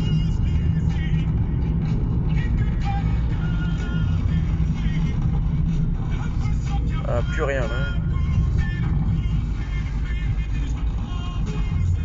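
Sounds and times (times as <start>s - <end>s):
car engine and tyres rumbling: 0.0s - 12.0s
music playing: 0.0s - 12.0s.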